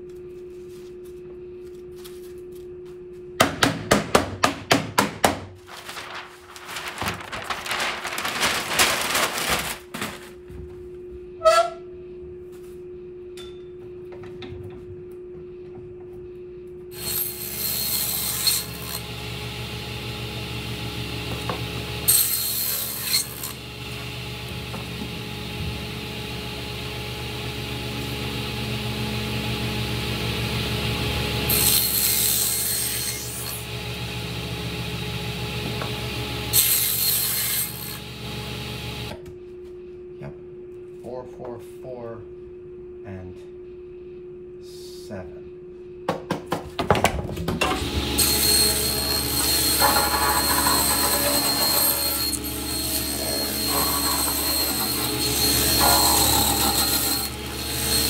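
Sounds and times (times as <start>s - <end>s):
saw blade cutting foam: 17.0s - 19.1s, 22.0s - 23.6s, 31.5s - 33.7s, 36.5s - 38.0s, 48.2s - 58.0s
table saw running: 17.0s - 39.1s, 47.6s - 58.0s.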